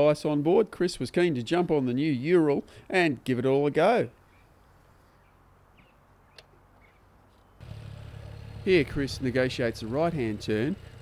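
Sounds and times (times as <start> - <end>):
faint bird chirps: 4.2 - 7.6
motorcycle engine running: 7.6 - 11.0.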